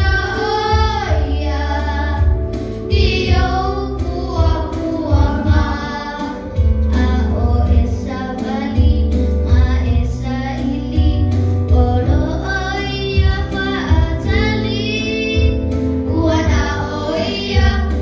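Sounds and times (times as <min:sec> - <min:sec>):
children singing into microphones: 0:00.0 - 0:18.0
musical accompaniment with deep bass: 0:00.0 - 0:18.0.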